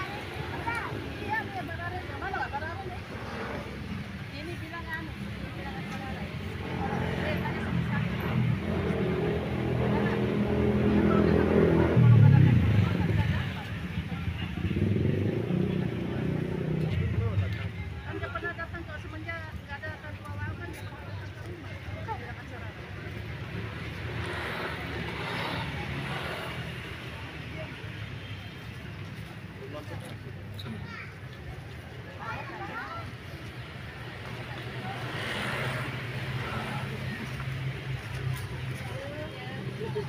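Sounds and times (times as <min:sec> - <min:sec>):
motor vehicle passing: 0:00.0 - 0:17.8, 0:21.6 - 0:27.8, 0:32.1 - 0:40.0
faint voices: 0:00.0 - 0:40.0.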